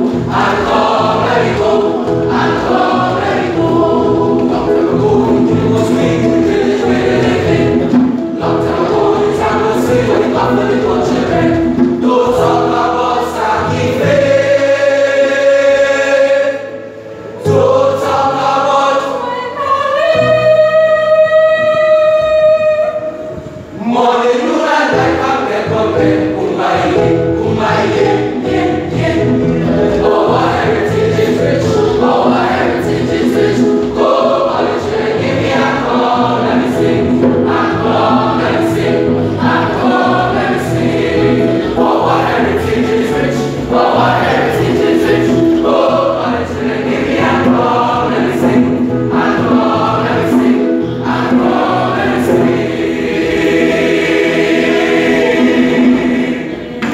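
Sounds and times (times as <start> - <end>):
boys choir singing in harmony: 0.0 - 56.9.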